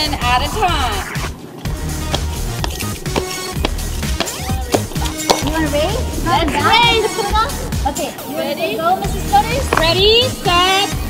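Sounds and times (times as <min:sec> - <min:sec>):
background music: 0:00.0 - 0:11.0
shoes thumping on asphalt: 0:01.2 - 0:06.8, 0:09.5 - 0:10.3.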